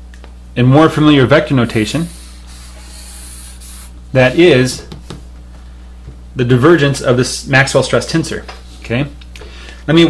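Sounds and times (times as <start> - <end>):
marker scratching on paper: 1.9 - 4.4.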